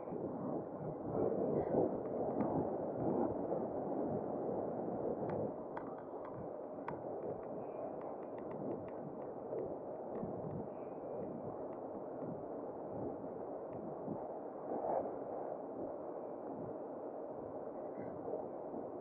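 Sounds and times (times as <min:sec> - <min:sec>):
wind rushing on microphone: 0:00.0 - 0:19.0.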